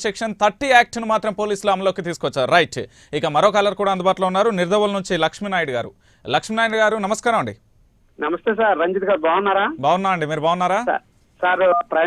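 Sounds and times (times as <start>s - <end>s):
man reading news: 0.0s - 12.0s.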